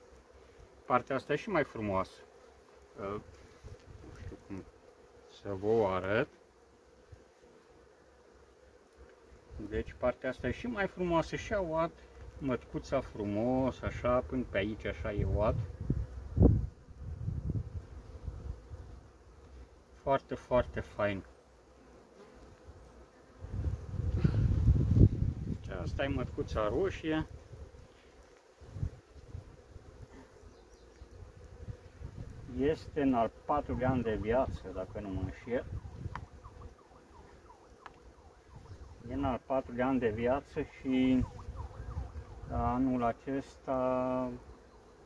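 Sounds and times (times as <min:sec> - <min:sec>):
honeybee colony humming: 0:00.0 - 0:45.0.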